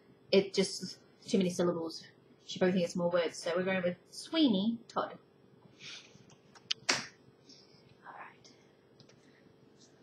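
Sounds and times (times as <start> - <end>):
faint steady hum: 0.0 - 10.0
soft whisper: 7.6 - 10.0.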